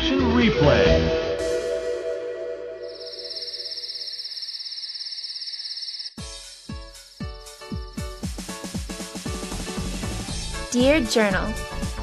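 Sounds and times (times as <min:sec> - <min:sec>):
crickets chirping: 0:02.9 - 0:06.2.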